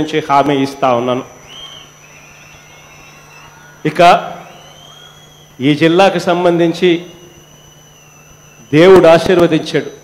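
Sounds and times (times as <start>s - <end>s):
low electrical hum: 0.0s - 10.0s
man speaking over loudspeaker: 3.8s - 4.5s, 5.6s - 7.2s, 8.7s - 10.0s.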